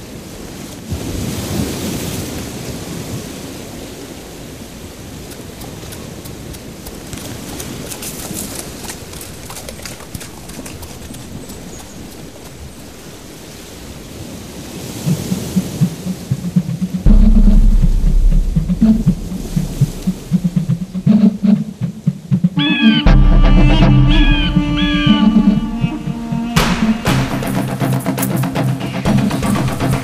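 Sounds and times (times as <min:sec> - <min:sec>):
sea surf breaking: 0:00.2 - 0:30.0
music with deep bass: 0:16.3 - 0:21.6, 0:22.9 - 0:30.0.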